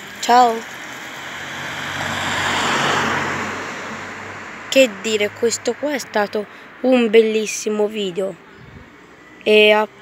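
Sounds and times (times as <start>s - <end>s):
road vehicle passing by: 0.0s - 10.0s.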